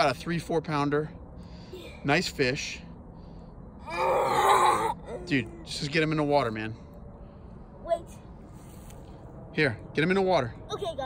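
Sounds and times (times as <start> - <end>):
person groaning: 3.9 - 5.7.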